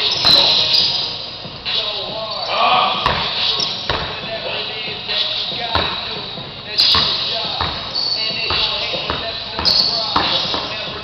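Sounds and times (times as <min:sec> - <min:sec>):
basketball bouncing on gym floor: 0:03.0 - 0:04.4, 0:05.6 - 0:11.0.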